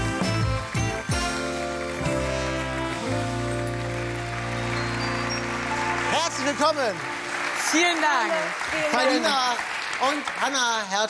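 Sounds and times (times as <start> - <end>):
music holding long chord: 0.0 - 9.4.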